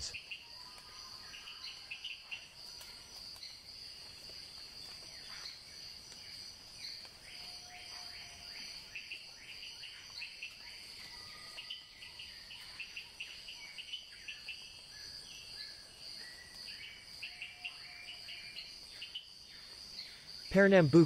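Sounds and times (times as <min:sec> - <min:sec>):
high insect trill: 0:00.0 - 0:21.0.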